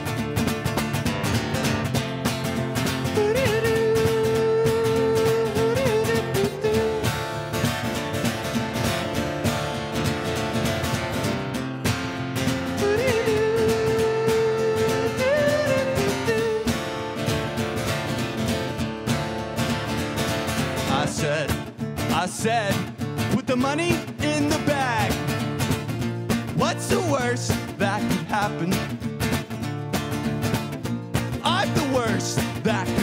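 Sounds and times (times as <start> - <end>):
acoustic guitar strumming: 0.0 - 33.0
man singing long wordless notes: 3.2 - 7.2, 12.8 - 16.7, 20.8 - 25.2, 26.6 - 28.9, 31.4 - 33.0.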